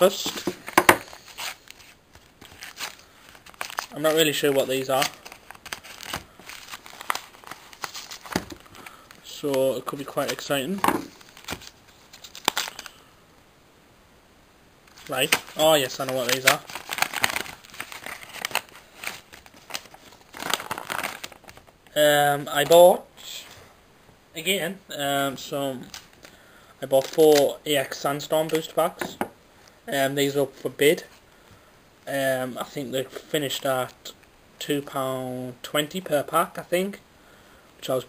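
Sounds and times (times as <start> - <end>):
paper rustling and crinkling: 0.2 - 9.3, 9.9 - 13.0, 14.9 - 21.8.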